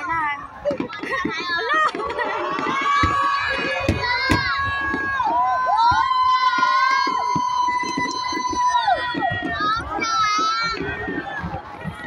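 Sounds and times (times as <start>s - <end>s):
crowd chatter and cheering: 0.0s - 12.0s.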